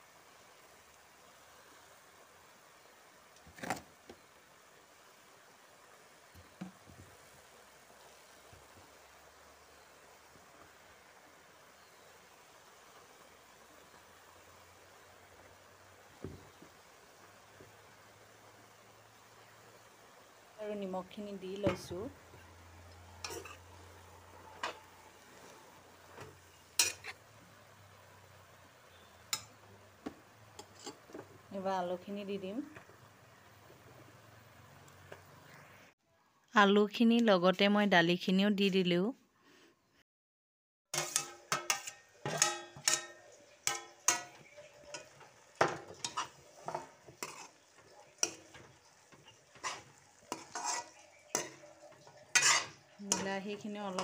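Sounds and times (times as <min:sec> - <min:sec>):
metal spatula scraping a pan: 0:23.1 - 0:27.2, 0:30.6 - 0:31.2, 0:40.9 - 0:54.0.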